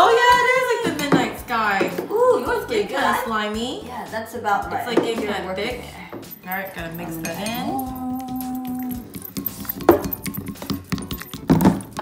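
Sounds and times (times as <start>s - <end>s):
wooden stick clinking on glass bowl: 6.3s - 12.0s.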